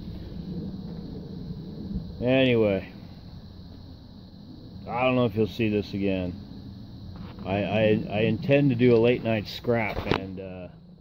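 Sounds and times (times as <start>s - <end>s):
faint hum: 0.0s - 11.0s
steady low rumble: 0.0s - 11.0s.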